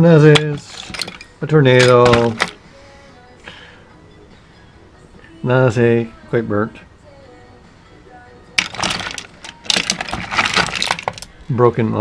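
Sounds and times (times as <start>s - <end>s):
small parts rattling in a bowl: 0.4s - 2.6s, 8.6s - 11.3s.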